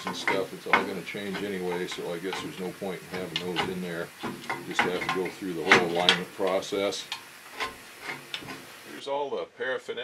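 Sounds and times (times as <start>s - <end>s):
hand tool clicking on steel: 0.0s - 8.4s
steady hiss: 0.0s - 10.0s.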